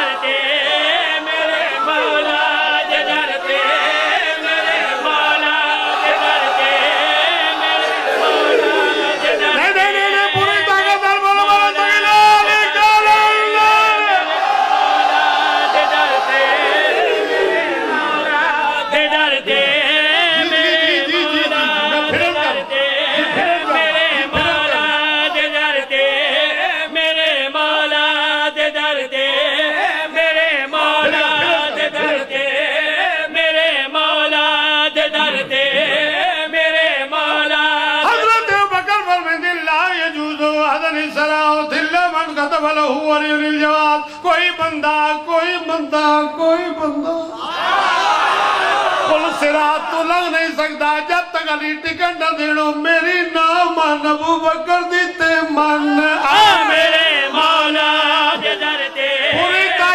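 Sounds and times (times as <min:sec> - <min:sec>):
man chanting melodically: 0:09.0 - 0:14.3, 0:18.2 - 0:47.4, 0:49.1 - 0:59.9.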